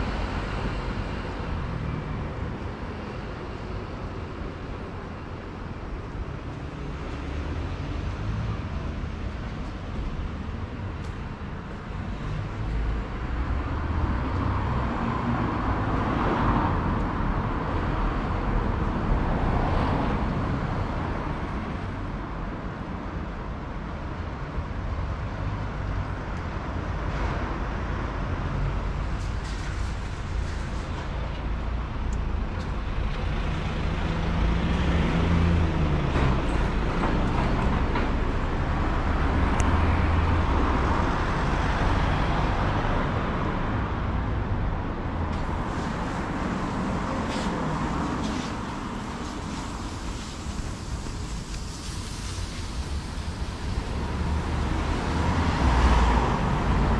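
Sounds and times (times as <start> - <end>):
hum of car traffic: 0.0 - 56.9
vehicles passing: 0.0 - 56.9.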